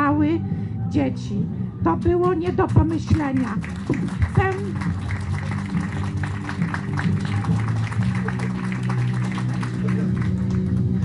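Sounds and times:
background music with low notes: 0.0 - 11.0
audience applauding: 3.2 - 11.0.

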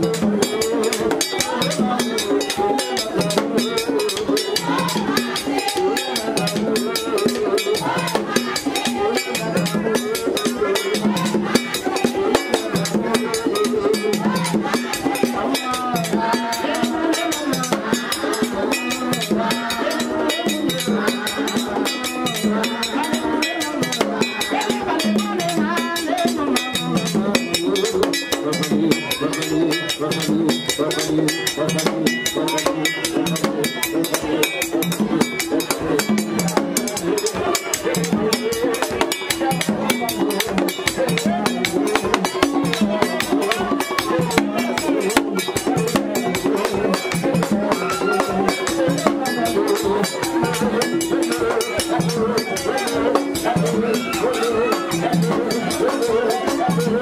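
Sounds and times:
fast hand drumming: 0.0 - 57.0
man singing into a microphone: 0.0 - 57.0.

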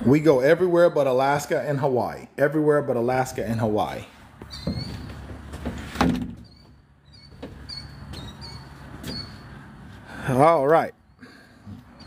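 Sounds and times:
door shutting with a thump: 5.7 - 6.5.

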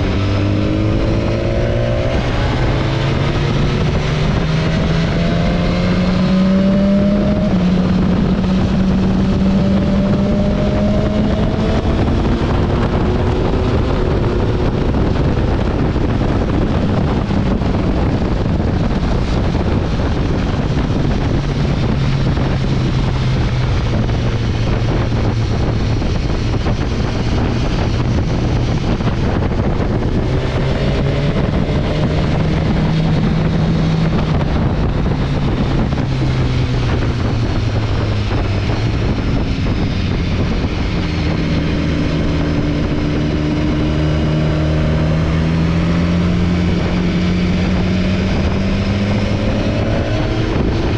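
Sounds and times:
motorcycle engine running: 0.0 - 50.9
wind noise on microphone: 0.0 - 50.9.

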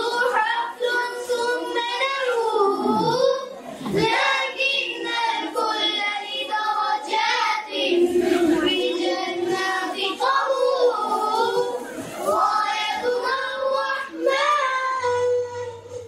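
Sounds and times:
children singing: 0.0 - 16.0.

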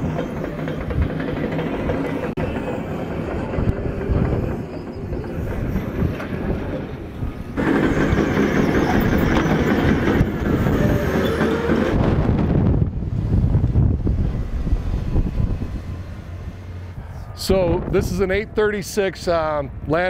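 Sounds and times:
machinery clanking: 0.0 - 18.2
heavy machinery rumbling: 0.0 - 19.5.

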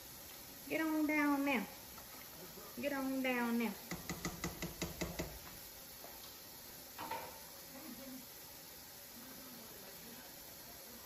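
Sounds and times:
pot simmering with faint hiss: 0.0 - 11.0
spatula tapping metal pot: 3.8 - 5.4.

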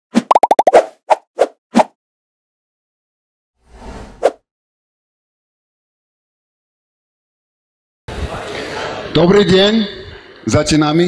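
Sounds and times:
cartoon pop sound effects: 0.2 - 0.9.

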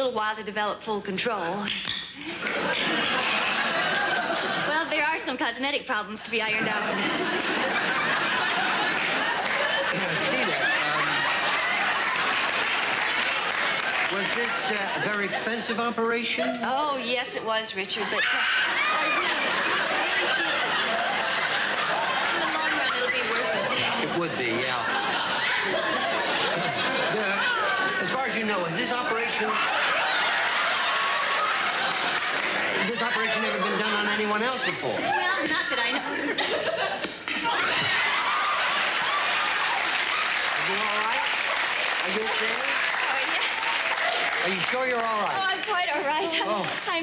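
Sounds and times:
audience laughing and applauding: 2.2 - 5.2, 6.4 - 16.6, 18.0 - 47.0
man speaking: 9.9 - 11.4, 14.1 - 16.8, 23.5 - 25.0, 27.1 - 29.6, 32.7 - 35.0, 42.0 - 42.8, 44.4 - 45.4.

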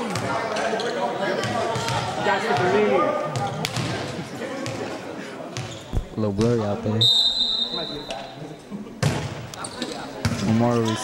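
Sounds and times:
referee's whistle: 7.0 - 8.3.

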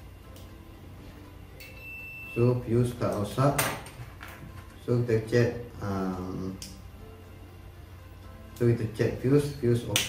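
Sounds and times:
multimeter continuity beep: 1.6 - 2.7.

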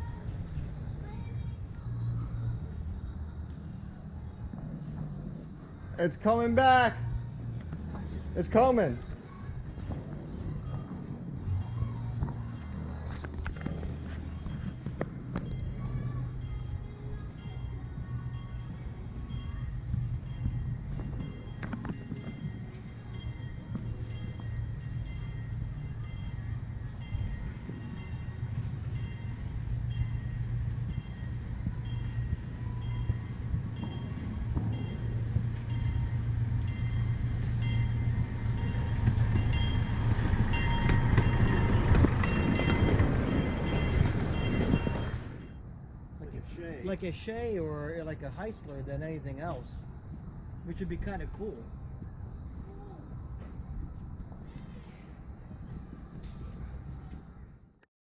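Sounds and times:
locomotive engine humming: 0.0 - 46.2
locomotive bell ringing: 8.4 - 45.7.

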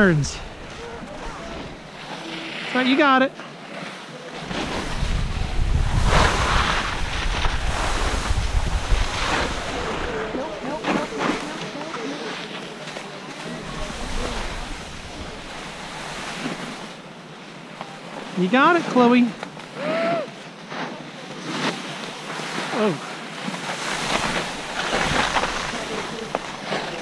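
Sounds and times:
skis scraping through slushy snow: 0.0 - 17.0, 20.6 - 27.0
wind buffeting microphone: 4.4 - 11.8.

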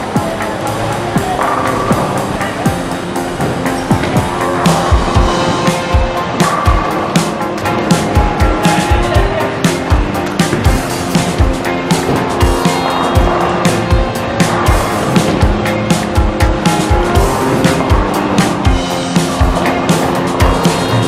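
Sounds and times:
background music with driving beat: 0.0 - 21.0.

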